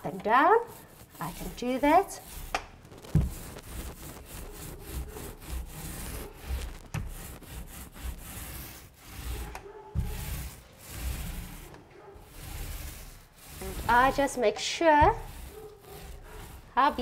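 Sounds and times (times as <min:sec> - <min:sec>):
paint roller rubbing on wood: 0:00.0 - 0:17.0.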